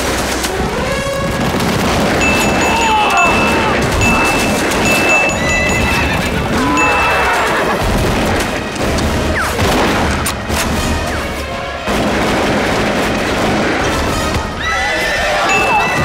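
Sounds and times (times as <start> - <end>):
horses whinnying: 6.1 - 8.0.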